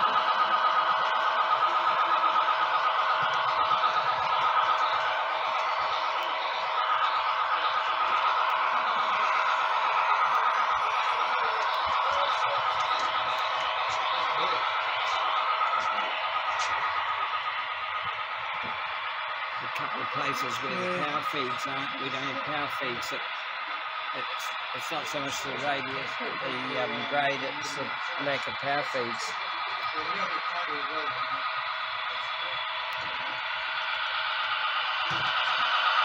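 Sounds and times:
model locomotive humming: 0:00.0 - 0:36.0.

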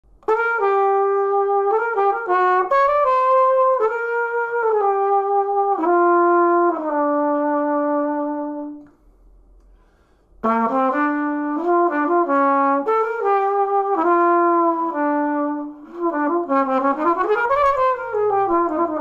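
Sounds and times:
flugelhorn playing melodic riff: 0:00.2 - 0:08.8, 0:10.4 - 0:19.0.

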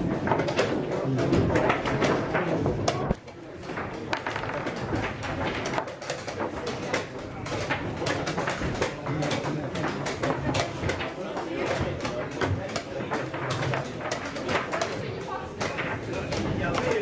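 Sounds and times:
chess pieces clicking on board: 0:00.0 - 0:17.0
low voices: 0:00.0 - 0:17.0.

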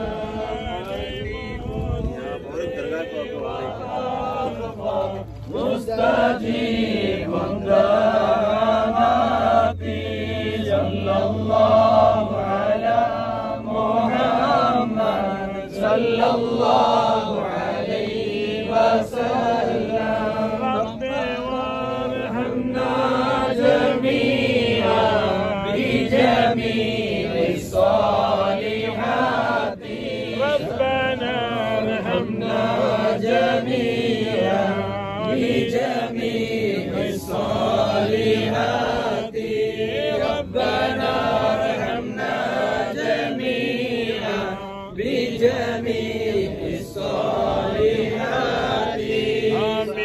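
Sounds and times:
men chanting together: 0:00.0 - 0:50.0.

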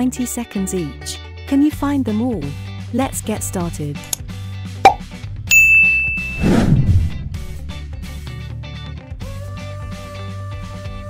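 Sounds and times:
sharp pop: 0:04.8 - 0:05.0
high held ding: 0:05.5 - 0:06.4
downward swoosh: 0:06.2 - 0:08.5
guitar music: 0:07.1 - 0:09.0.

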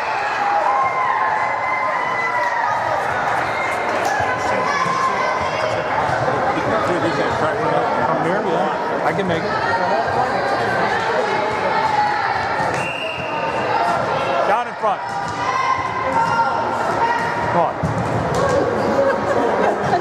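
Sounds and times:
spectators chattering: 0:00.0 - 0:20.0
referee's whistle blast: 0:12.8 - 0:13.6.

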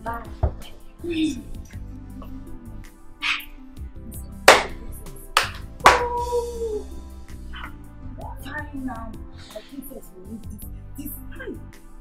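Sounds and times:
film music: 0:00.0 - 0:12.0
hand clap: 0:04.5 - 0:06.4
woman squealing: 0:06.1 - 0:07.0.

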